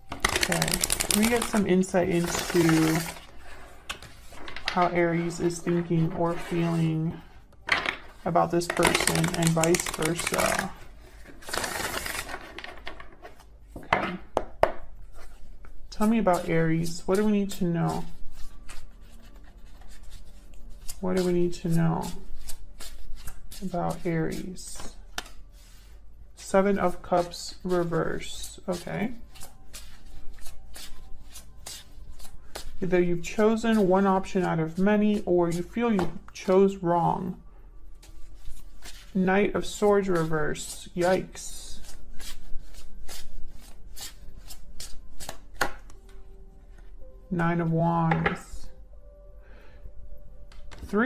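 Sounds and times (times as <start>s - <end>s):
cards being shuffled: 0.0s - 5.8s, 7.8s - 13.5s, 22.0s - 24.0s, 24.8s - 25.8s, 40.0s - 46.2s.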